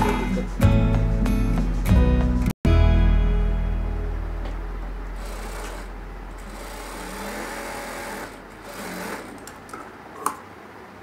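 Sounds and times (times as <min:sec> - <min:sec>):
sewing machine stitching: 0:05.2 - 0:09.6.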